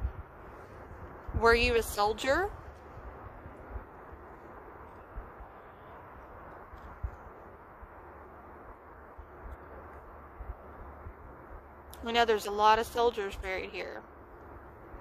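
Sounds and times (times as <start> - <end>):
low hiss and rumble: 0.0 - 15.0.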